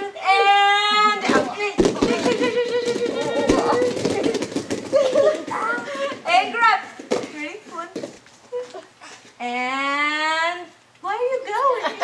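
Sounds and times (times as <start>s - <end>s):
children chattering and calling out: 0.0s - 4.5s.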